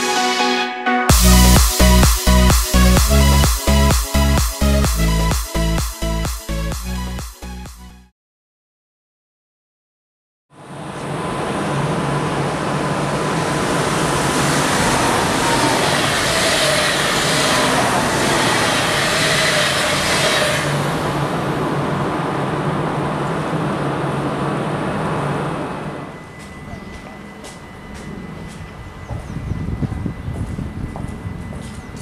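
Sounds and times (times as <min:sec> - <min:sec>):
electric train passing at speed: 0:00.0 - 0:06.6, 0:10.5 - 0:32.0.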